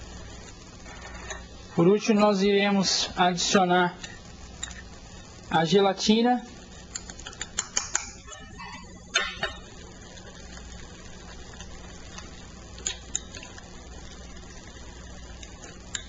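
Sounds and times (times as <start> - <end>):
sharp clicks: 6.9 - 8.2.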